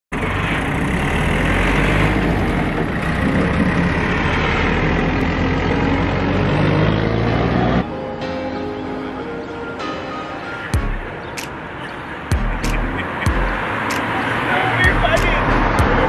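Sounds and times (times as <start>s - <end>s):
truck engine rumble: 0.1s - 8.0s, 12.2s - 16.0s.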